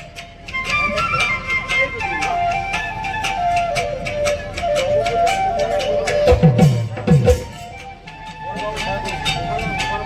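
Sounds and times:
drum and percussion beat: 0:00.0 - 0:10.0
flute melody: 0:00.0 - 0:10.0.

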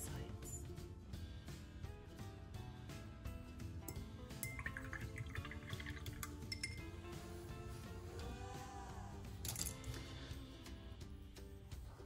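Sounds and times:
background music: 0:00.0 - 0:12.0
brush clinking against glass: 0:03.8 - 0:07.1
water splashing in a jar: 0:04.4 - 0:06.7.

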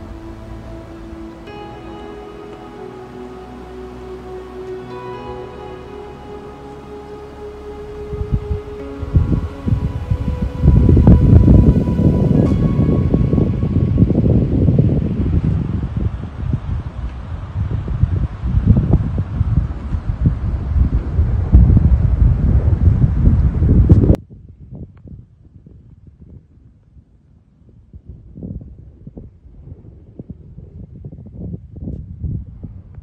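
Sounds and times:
soft background music: 0:00.0 - 0:16.1
wind buffeting microphone: 0:00.0 - 0:33.0.

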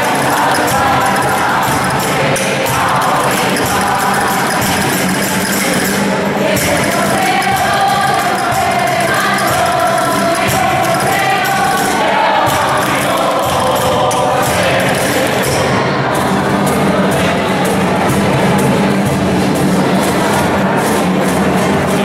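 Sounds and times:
choir and congregation singing hymn: 0:00.0 - 0:22.0
guitar: 0:00.0 - 0:22.0
jingling percussion: 0:00.0 - 0:22.0.

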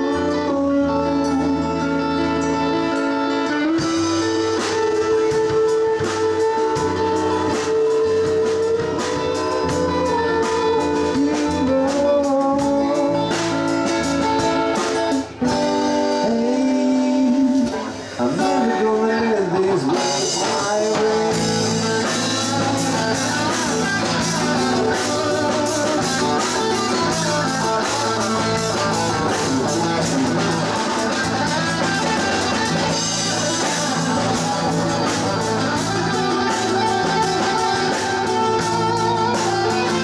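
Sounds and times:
bass guitar: 0:00.0 - 0:40.0
drum kit: 0:00.0 - 0:40.0
electric guitar lead with bends: 0:00.0 - 0:40.0.

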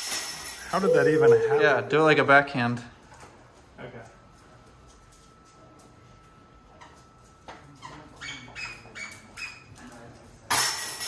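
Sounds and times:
metallic chain jingle: 0:10.5 - 0:11.0.

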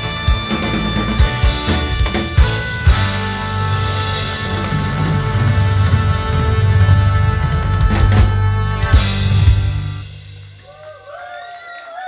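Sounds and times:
rock band final note: 0:00.0 - 0:10.6.

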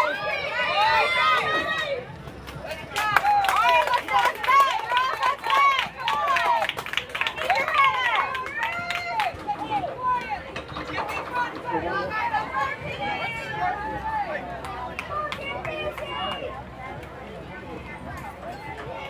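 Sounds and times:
children shouting and cheering: 0:00.0 - 0:02.2, 0:02.9 - 0:10.4.

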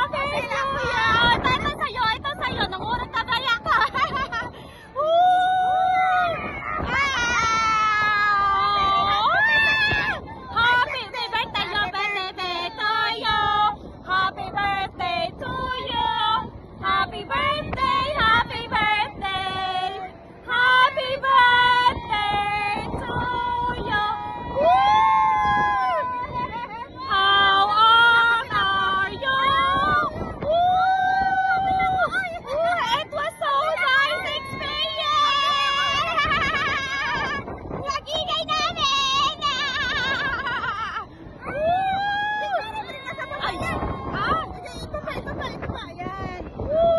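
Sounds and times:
women screaming and laughing: 0:02.5 - 0:13.1, 0:23.4 - 0:46.9.

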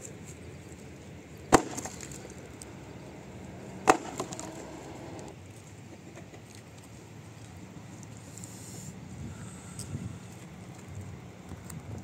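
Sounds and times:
axe chopping log: 0:01.5 - 0:02.3, 0:03.8 - 0:05.2
wood splintering crack: 0:01.5 - 0:02.4, 0:03.8 - 0:05.3.

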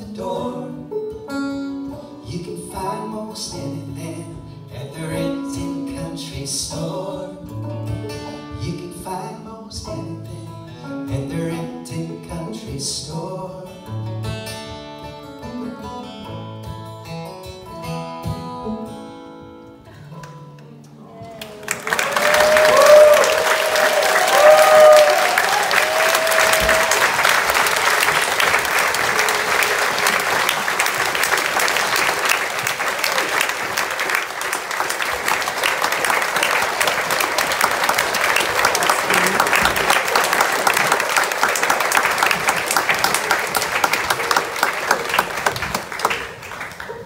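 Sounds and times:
audience applauding: 0:21.3 - 0:47.0
audience cheering calls: 0:21.4 - 0:45.6.

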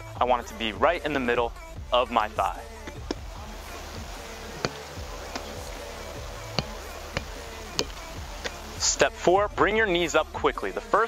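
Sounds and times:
faint steady hum: 0:02.7 - 0:09.3.

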